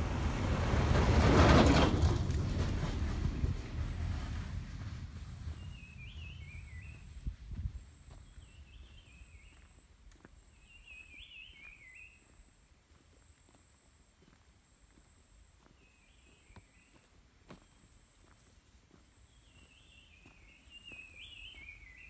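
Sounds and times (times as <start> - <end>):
pickup truck driving past: 0.0 - 7.1.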